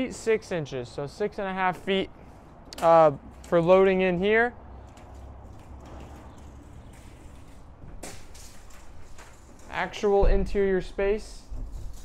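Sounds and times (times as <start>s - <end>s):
footsteps on plywood ramp: 5.0s - 10.7s.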